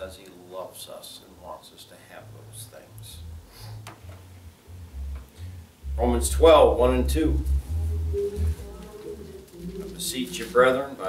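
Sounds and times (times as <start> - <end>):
faint low tone: 2.2 - 10.6.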